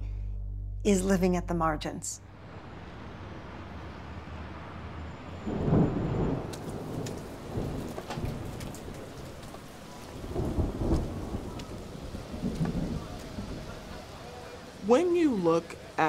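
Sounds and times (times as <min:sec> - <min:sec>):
deep low rumbles: 0:00.0 - 0:08.6
rain falling on street: 0:02.4 - 0:16.0.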